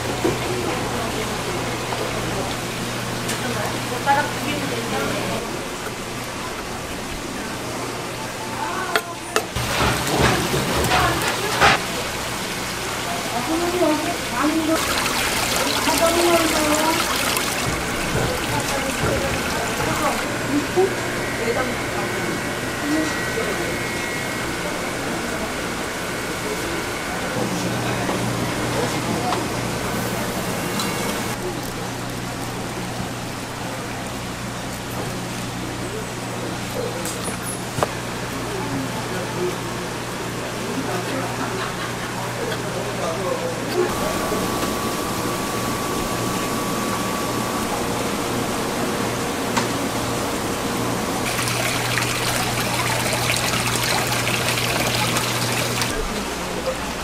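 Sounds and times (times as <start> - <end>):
water trickling and splashing: 9.6 - 20.4, 51.2 - 56.0.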